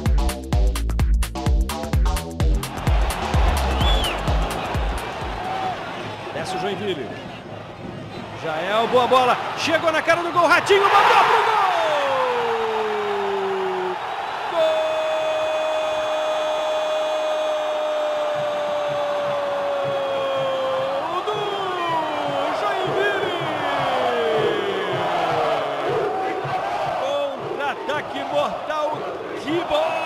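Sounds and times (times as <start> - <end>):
crowd noise: 2.6 - 30.0
commentator shouting goal: 8.6 - 13.3, 20.0 - 26.0.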